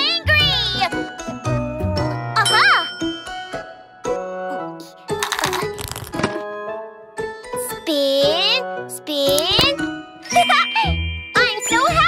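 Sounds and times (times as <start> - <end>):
light children's music: 0.0 - 12.0
bell-like dings and jingles: 2.4 - 4.0, 10.2 - 12.0.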